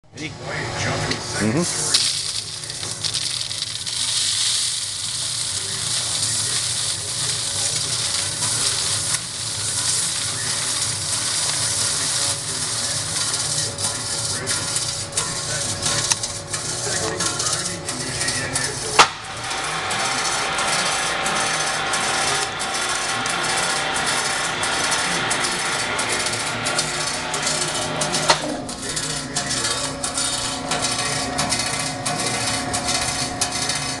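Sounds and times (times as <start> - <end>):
machine noise: 0.1 - 34.0
steady hum: 0.1 - 34.0
granular material hissing: 1.4 - 31.2.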